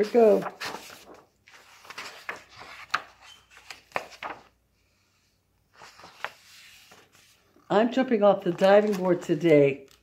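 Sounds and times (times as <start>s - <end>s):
paper pages rustling: 0.0s - 4.6s, 5.7s - 7.7s, 8.3s - 10.0s.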